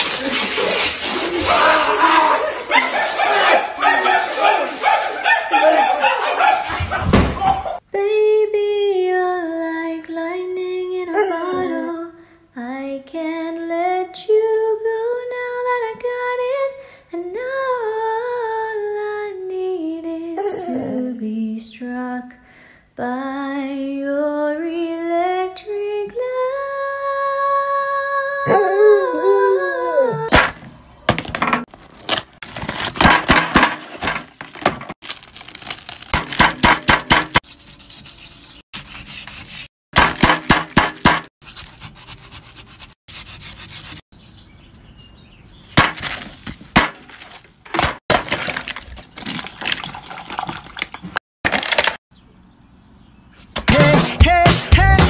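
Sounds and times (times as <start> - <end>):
dog howling: 1.4 - 6.7, 28.4 - 30.3.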